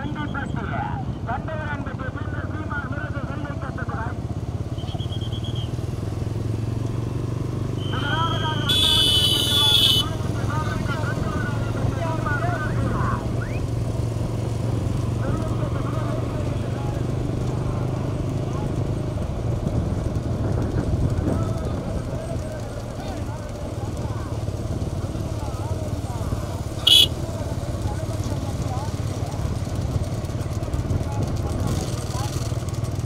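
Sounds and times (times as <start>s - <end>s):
motorcycle engines running: 0.0s - 33.0s.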